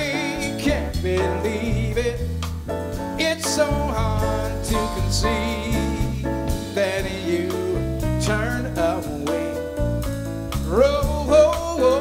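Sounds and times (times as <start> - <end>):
drum kit: 0.0 - 12.0
electric bass guitar: 0.0 - 12.0
grand piano: 0.0 - 12.0
man singing: 0.0 - 12.0.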